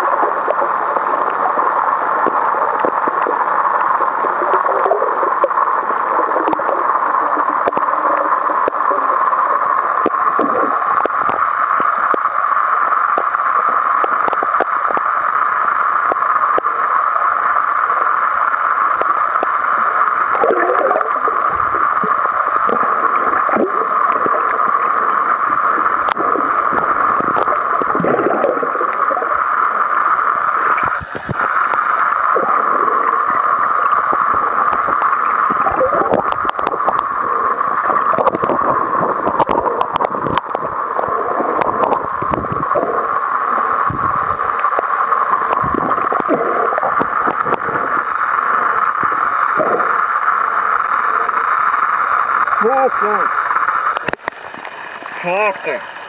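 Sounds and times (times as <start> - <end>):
rushing gurgling water: 0.0 - 56.0.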